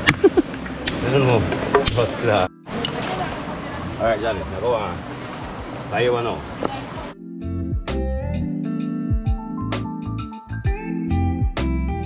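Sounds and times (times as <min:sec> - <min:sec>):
machete chopping sticks: 0:00.0 - 0:01.1.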